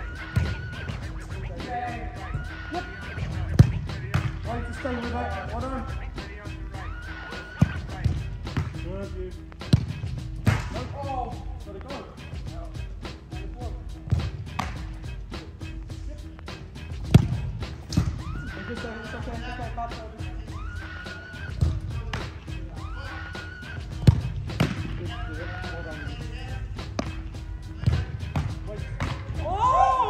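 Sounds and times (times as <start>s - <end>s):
music with fast beat: 0.0s - 30.0s
soccer ball thumps: 3.2s - 4.4s, 7.6s - 8.9s, 9.7s - 10.8s, 14.1s - 14.8s, 17.1s - 18.2s, 21.6s - 22.3s, 24.0s - 25.0s, 27.8s - 29.5s.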